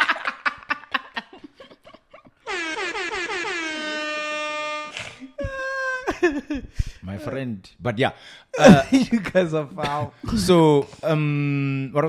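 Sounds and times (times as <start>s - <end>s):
air horn blast: 2.5s - 5.3s.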